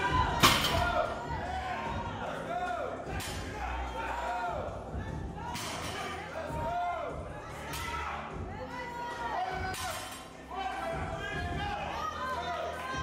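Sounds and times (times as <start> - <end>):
indistinct voices echoing: 0.0 - 13.0.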